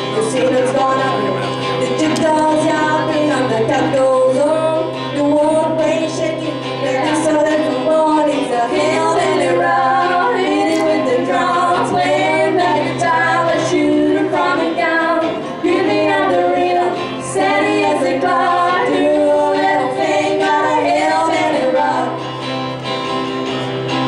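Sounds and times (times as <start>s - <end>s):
woman singing country-rock song: 0.0s - 22.8s
acoustic guitar: 0.0s - 24.0s.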